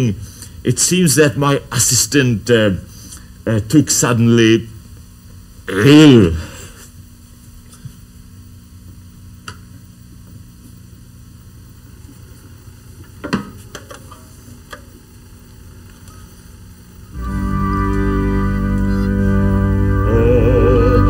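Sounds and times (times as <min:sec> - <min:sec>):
low electrical hum with hiss: 0:00.0 - 0:21.0.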